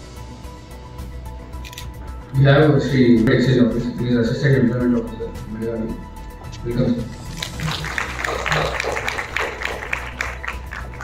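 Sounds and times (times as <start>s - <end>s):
audience applauding: 7.3s - 11.0s.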